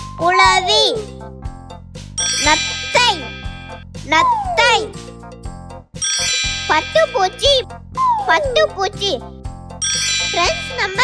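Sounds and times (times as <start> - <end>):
cheerful children's music: 0.0 - 11.0
bright chiming ding: 2.2 - 3.8, 6.0 - 7.5, 9.8 - 11.0.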